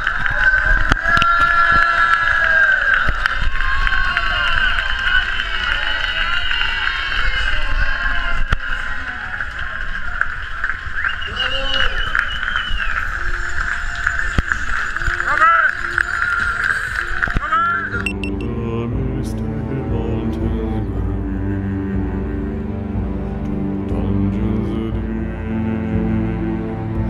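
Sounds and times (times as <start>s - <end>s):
crowd cheering and clapping: 0.0s - 18.4s.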